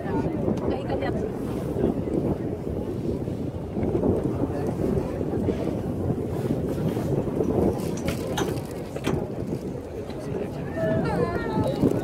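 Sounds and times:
boat noise: 0.0s - 12.0s
water: 0.0s - 12.0s
wind buffeting microphone: 0.0s - 12.0s.

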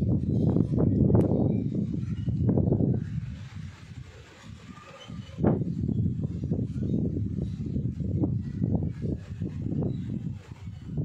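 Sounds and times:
gusty wind buffeting microphone: 0.0s - 11.0s.

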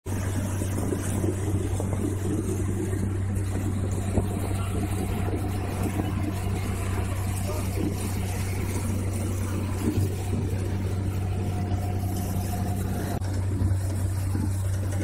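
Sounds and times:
boat engine humming: 0.0s - 15.0s.

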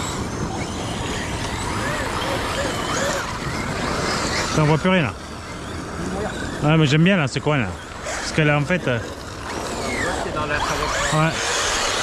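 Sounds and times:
electric motor whines: 0.0s - 12.0s.

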